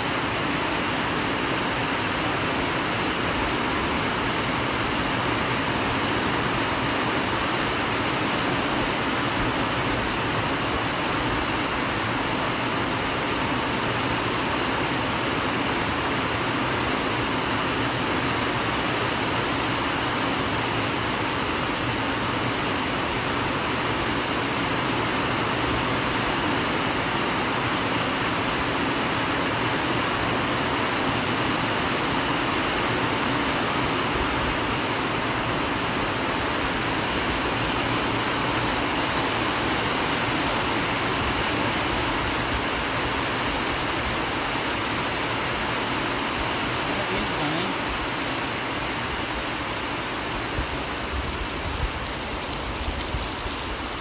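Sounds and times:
heavy rain falling: 0.0 - 54.0.

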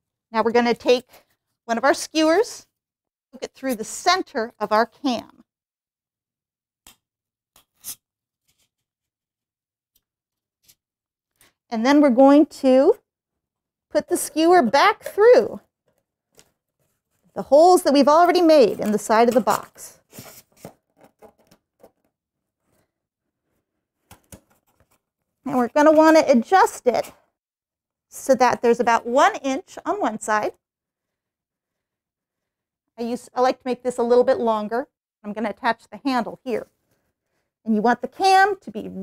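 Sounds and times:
faint handling sounds: 15.8 - 26.0.

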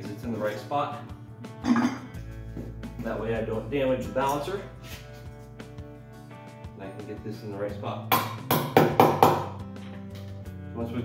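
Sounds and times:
hammer tapping on metal rim: 8.1 - 9.5.

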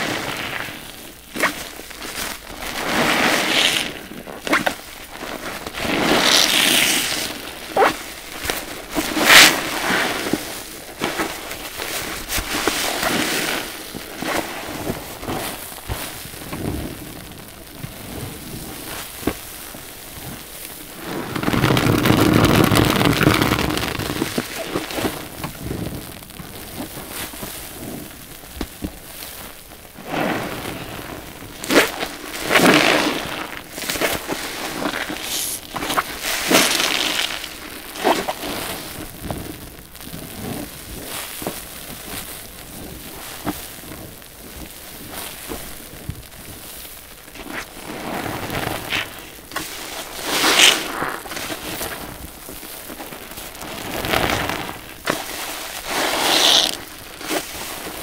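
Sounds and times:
foam crackling: 0.0 - 58.0
wet sponge squelching: 20.2 - 26.0, 53.7 - 58.0.

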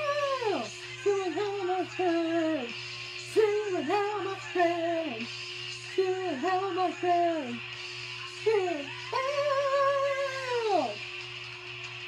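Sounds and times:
heavy metal singing: 0.0 - 11.0.

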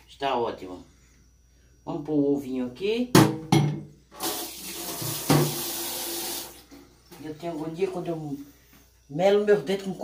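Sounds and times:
tap running into steel sink: 4.9 - 5.7.

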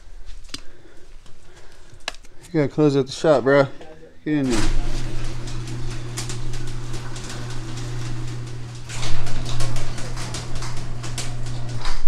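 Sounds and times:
garage door opener motor hum: 4.4 - 12.0
rattle of clicks from moving door: 4.5 - 12.0.

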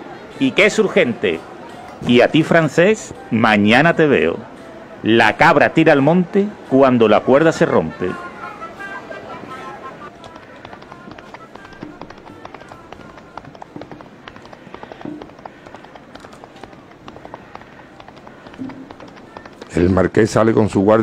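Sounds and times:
murmur of voices: 0.0 - 21.0
small steps and knocks: 10.1 - 20.2.

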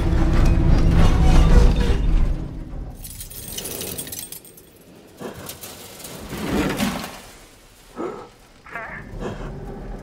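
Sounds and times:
broken glass and debris tinkling: 2.9 - 6.3.

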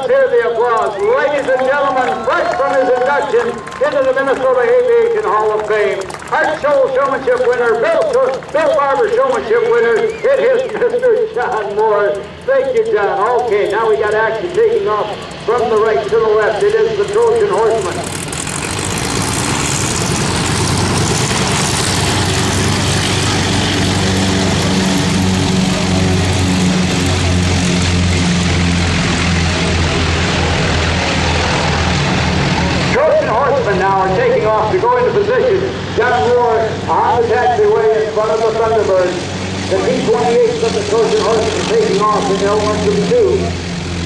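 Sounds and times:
people talking: 0.0 - 18.2, 32.9 - 43.6
biplane engine taxiing: 0.0 - 44.0
radial engines at takeoff power: 0.0 - 44.0.

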